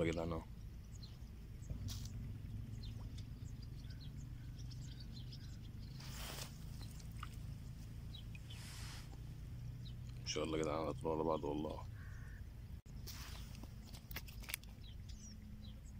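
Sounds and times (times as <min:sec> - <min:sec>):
steady low rumble: 0:00.0 - 0:13.9
faint bird chirps: 0:00.0 - 0:15.9.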